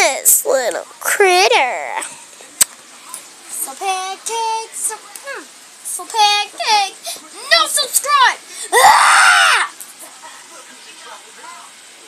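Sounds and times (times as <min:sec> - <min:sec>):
girl screaming: 0:07.5 - 0:09.7.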